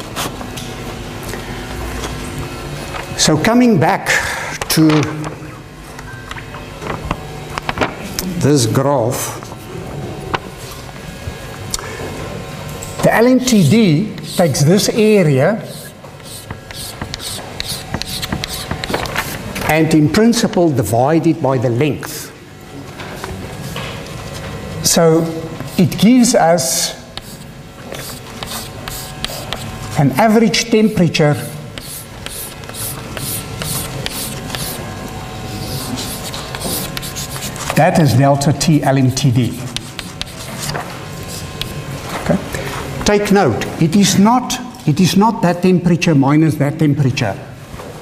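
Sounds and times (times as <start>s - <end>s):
steady low hum: 0.0s - 48.0s
chalk tapping and scraping: 14.2s - 15.0s, 15.7s - 19.4s, 25.6s - 30.2s, 31.4s - 34.8s, 35.5s - 37.8s, 39.7s - 41.8s.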